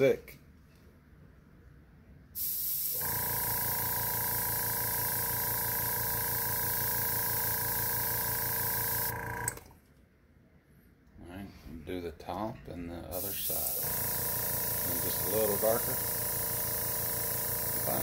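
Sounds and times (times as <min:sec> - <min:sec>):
airbrush spraying hiss: 0:02.4 - 0:04.0, 0:13.2 - 0:18.0
compressor motor hum: 0:02.4 - 0:09.8, 0:13.2 - 0:18.0.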